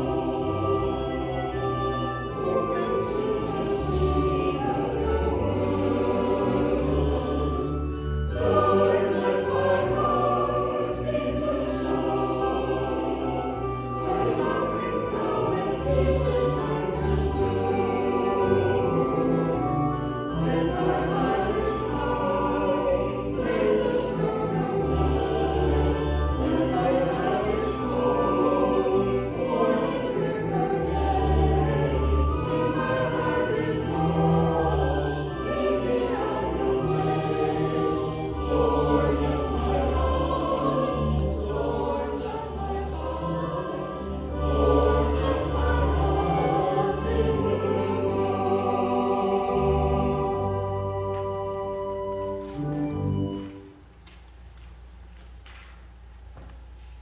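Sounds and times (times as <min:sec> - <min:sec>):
church choir singing: 0:00.0 - 0:54.7.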